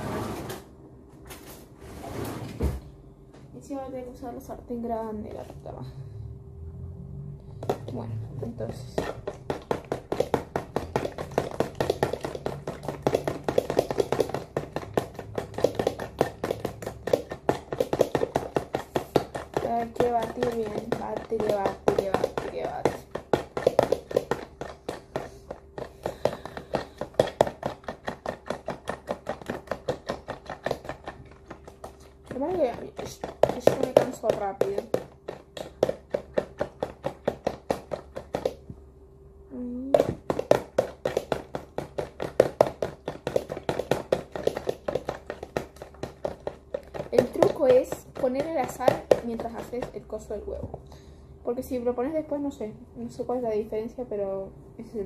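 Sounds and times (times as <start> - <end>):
fork beating eggs in container: 7.6 - 38.7, 40.0 - 50.6.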